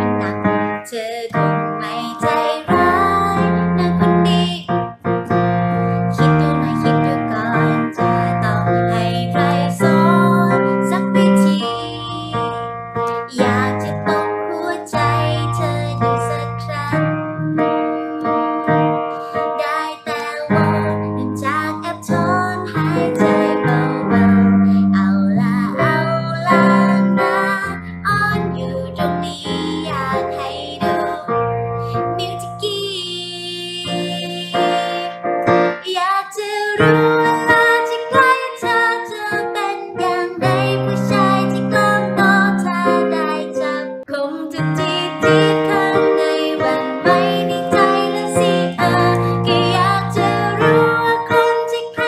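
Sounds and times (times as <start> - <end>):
woman singing softly: 0.0 - 52.0.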